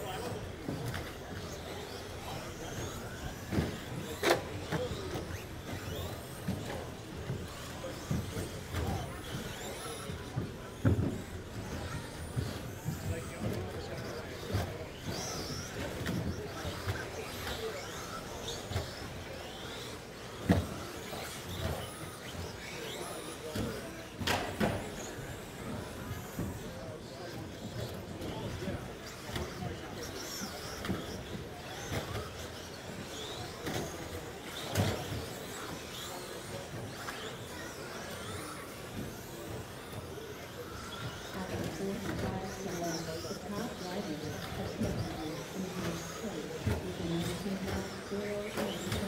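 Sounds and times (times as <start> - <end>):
electric motors whining: 0.0 - 49.0
electric rc trucks racing: 0.0 - 49.0.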